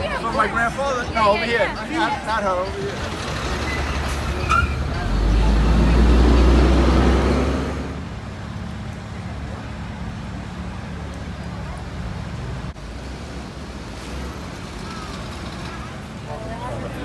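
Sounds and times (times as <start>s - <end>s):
traffic engine hum: 0.0s - 17.0s
vehicle passing by: 2.8s - 8.2s.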